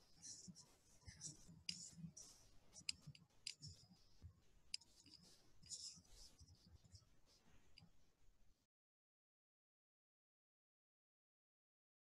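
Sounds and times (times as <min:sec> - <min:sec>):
faint clicks: 0:01.0 - 0:02.2.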